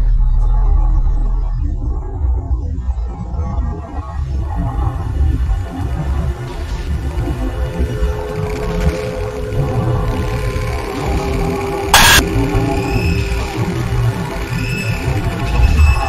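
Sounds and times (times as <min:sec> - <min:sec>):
low rumble: 0:00.0 - 0:16.0
loud noise burst: 0:06.4 - 0:16.0
arching high tones: 0:07.8 - 0:15.4
held mid tone: 0:07.8 - 0:15.5.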